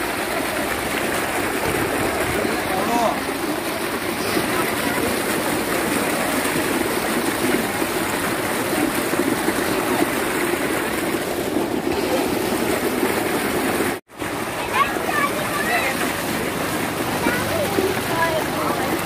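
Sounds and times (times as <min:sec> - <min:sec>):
water gushing into a channel: 0:00.0 - 0:19.0.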